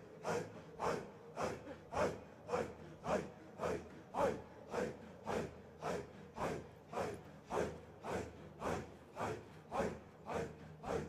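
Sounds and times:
group breathy rhythmic chanting: 0.0s - 11.0s.

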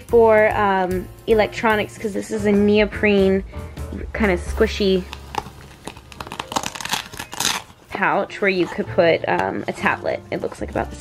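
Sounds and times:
plastic crinkling and rustling: 5.0s - 7.9s.

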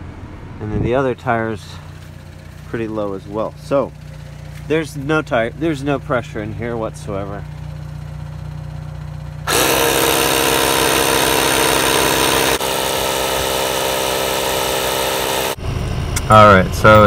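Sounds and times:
tire inflator compressor running: 1.6s - 15.6s.

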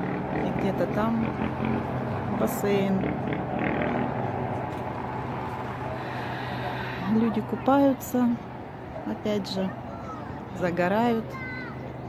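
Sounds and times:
distant engine drone: 0.0s - 12.0s.

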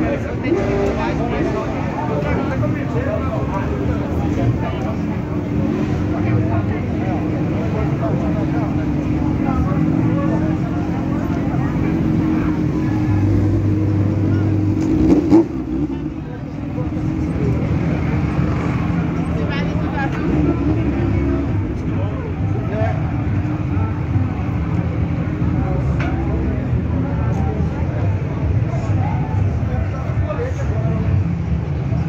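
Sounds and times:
crowd chatter: 0.0s - 32.0s
motorcycle engines idling: 0.0s - 32.0s.

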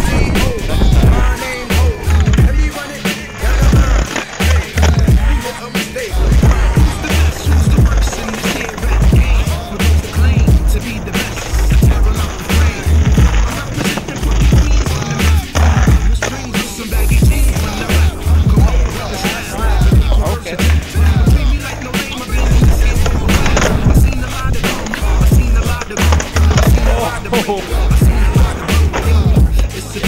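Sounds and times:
hip hop music with heavy bass: 0.0s - 30.0s
skateboard clacking on pavement: 0.0s - 30.0s
skateboard wheels rolling: 0.0s - 30.0s.

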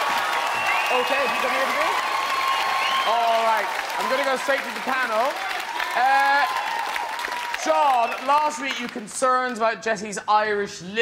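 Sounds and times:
audience applauding and cheering: 0.0s - 9.6s.

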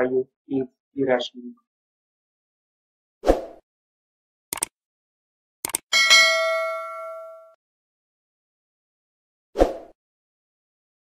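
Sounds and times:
bright bell ding: 5.9s - 7.6s.

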